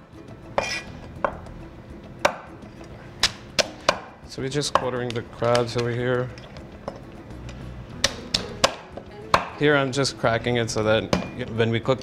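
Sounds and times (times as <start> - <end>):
cleaver chopping onto wooden board: 3.2 - 4.2, 8.0 - 9.6.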